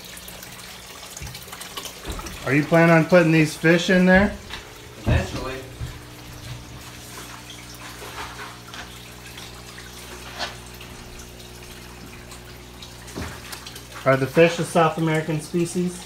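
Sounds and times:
low electric hum: 0:00.0 - 0:16.0
water trickling and bubbling: 0:00.0 - 0:16.0.

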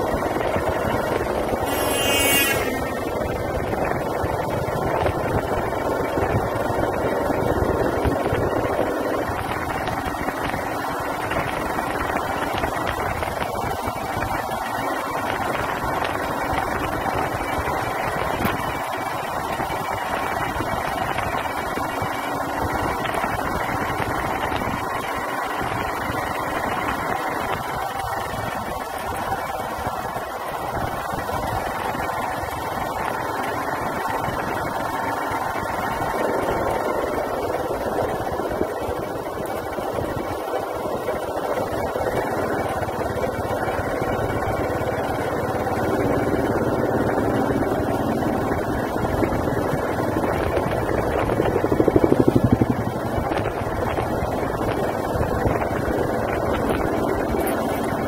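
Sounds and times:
motorbike engine running: 0:00.0 - 0:58.0
wind and road noise: 0:00.0 - 0:58.0.

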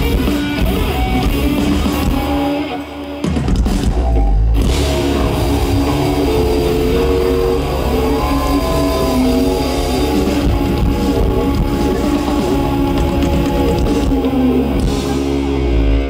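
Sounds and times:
bass: 0:00.0 - 0:16.0
drums: 0:00.0 - 0:16.0
electric guitar: 0:00.0 - 0:16.0
keyboard holding long notes: 0:00.0 - 0:16.0.

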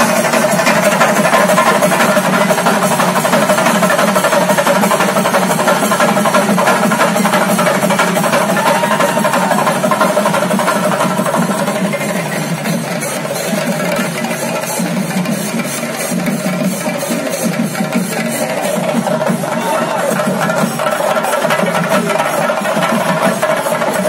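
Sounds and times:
drums beaten in fast roll: 0:00.0 - 0:24.0.

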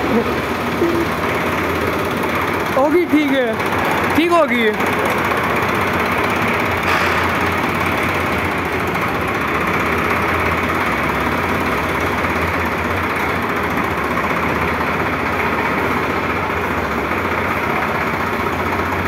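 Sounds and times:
tractor diesel engine idling: 0:00.0 - 0:19.0.

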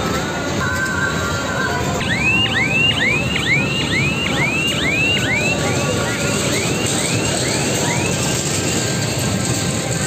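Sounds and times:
fairground din: 0:00.0 - 0:10.0
electronic rising chirps: 0:02.0 - 0:08.2.

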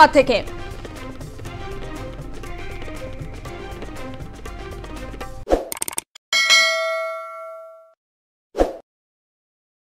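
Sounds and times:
background music: 0:00.0 - 0:05.5
quick clicks: 0:05.6 - 0:06.1
bright bell-like ding: 0:06.4 - 0:08.0
short swish: 0:08.6 - 0:08.8.

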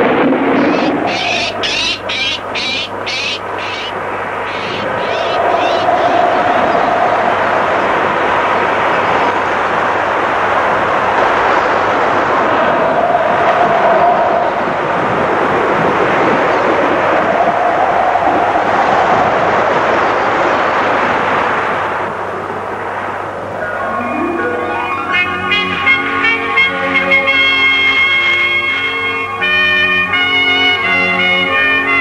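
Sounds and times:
wind rushing through forest: 0:00.0 - 0:28.8
howling wind whistle: 0:00.0 - 0:32.0.

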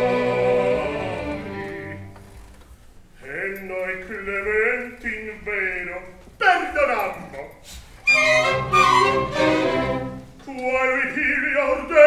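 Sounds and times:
man singing opera: 0:00.0 - 0:02.0, 0:03.2 - 0:06.7, 0:10.4 - 0:12.0
orchestra playing: 0:00.0 - 0:02.1, 0:08.0 - 0:10.4.

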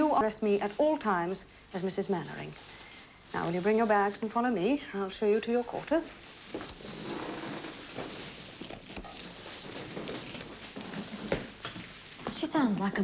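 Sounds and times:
rustling: 0:05.9 - 0:12.4
footsteps: 0:06.2 - 0:12.5
bags being handled: 0:06.4 - 0:12.2.

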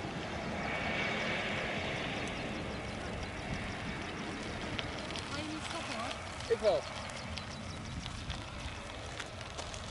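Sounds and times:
distant jet engines rumbling: 0:00.0 - 0:09.9.

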